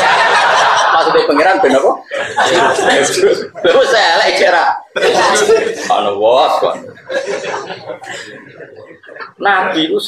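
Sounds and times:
people laughing: 0:00.0 - 0:10.0
man speaking: 0:00.9 - 0:07.5.

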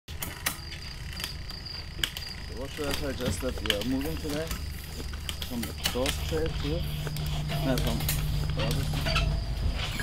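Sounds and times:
sharp clicks from bicycle work: 0:00.1 - 0:09.3
crickets chirping: 0:00.1 - 0:10.0
steady low hum: 0:00.1 - 0:10.0.

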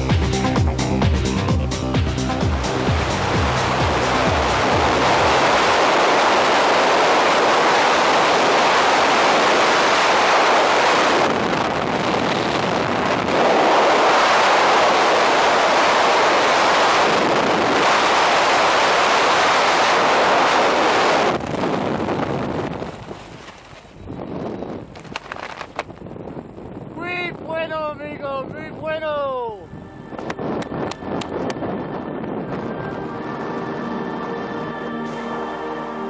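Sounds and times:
wind roaring over microphone: 0:00.0 - 0:36.0.

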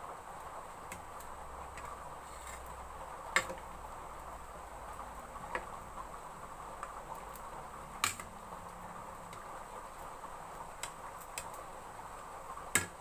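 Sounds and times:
steady low hiss of steaming pot: 0:00.0 - 0:13.0.

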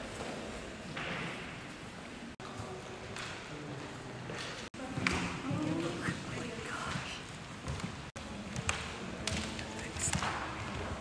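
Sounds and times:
murmur of voices: 0:02.4 - 0:07.3.

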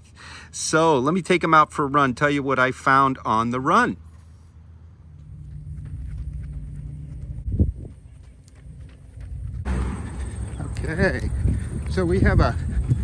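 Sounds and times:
low steady rumble: 0:04.2 - 0:13.0
running footsteps on asphalt: 0:05.1 - 0:13.0.

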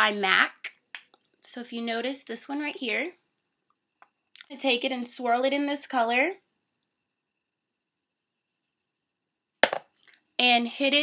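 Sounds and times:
sharp knock: 0:09.6 - 0:09.9.

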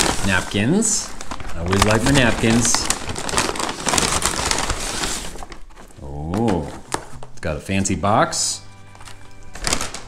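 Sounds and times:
paper bag rustling and crinkling: 0:00.0 - 0:10.0.

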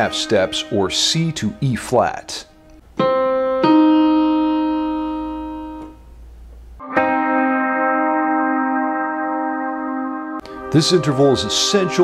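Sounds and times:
electric guitar chord ringing: 0:00.0 - 0:01.7, 0:02.5 - 0:12.0
digital keyboard chord: 0:00.0 - 0:02.2, 0:03.0 - 0:06.0, 0:06.8 - 0:12.0.

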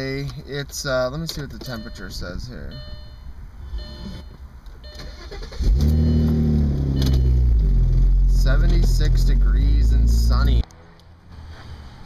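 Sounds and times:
car engine starting and idling: 0:03.8 - 0:10.6.

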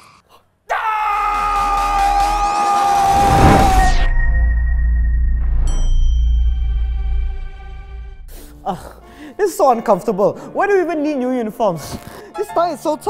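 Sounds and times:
cinematic hit with falling tones: 0:03.0 - 0:08.6
low rumble: 0:03.0 - 0:09.1.

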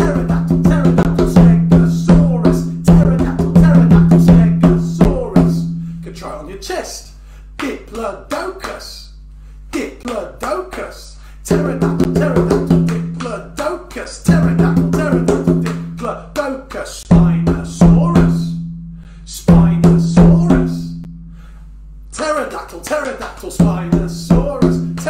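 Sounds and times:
sharp percussion strikes: 0:11.5 - 0:13.3.

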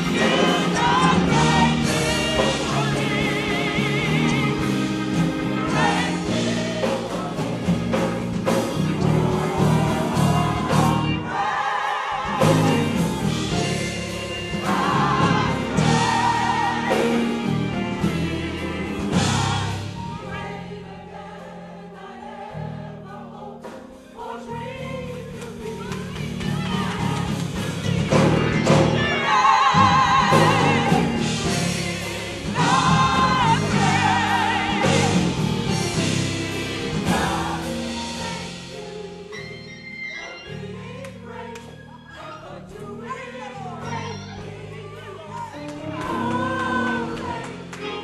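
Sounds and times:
gospel choir singing: 0:00.0 - 0:48.0.

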